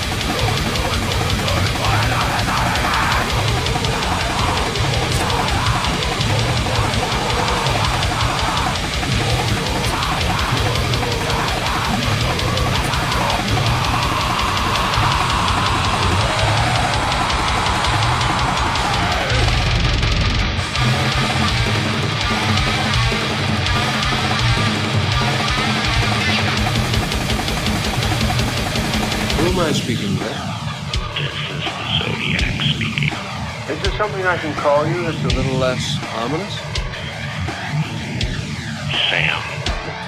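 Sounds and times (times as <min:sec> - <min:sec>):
death metal playing: 0:00.0 - 0:40.0
fast drum kit: 0:00.0 - 0:40.0
heavily distorted guitars: 0:00.0 - 0:40.0
spoken voice sample: 0:29.4 - 0:36.6, 0:38.9 - 0:39.8.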